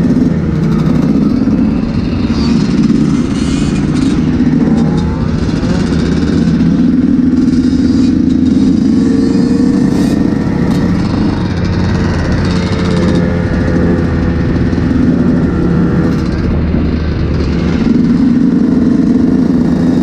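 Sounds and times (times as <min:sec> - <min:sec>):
dirt bike engines running: 0:00.0 - 0:20.0.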